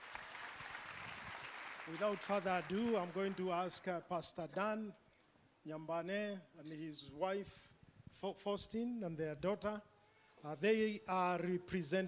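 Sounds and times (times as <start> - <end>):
congregation clapping: 0.0 - 4.2.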